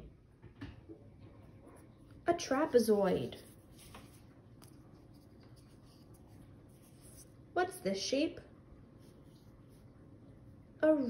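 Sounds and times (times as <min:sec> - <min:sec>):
faint rustling: 0:01.2 - 0:07.4
woman's voice: 0:02.3 - 0:03.5, 0:07.6 - 0:08.5, 0:10.8 - 0:11.0.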